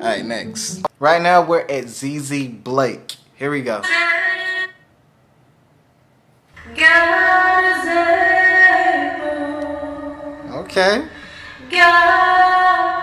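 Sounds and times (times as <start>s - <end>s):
woman singing with echo: 6.6s - 13.0s.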